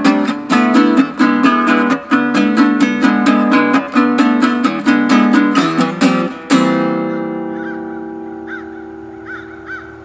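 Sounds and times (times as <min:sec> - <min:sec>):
bass guitar chord ringing: 0:00.0 - 0:10.0
bird calling: 0:06.9 - 0:10.0.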